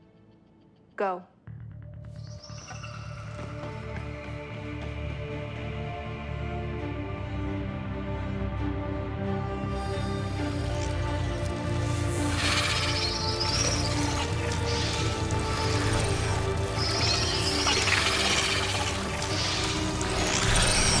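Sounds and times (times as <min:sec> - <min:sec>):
dark film score low tones: 0:00.0 - 0:21.0.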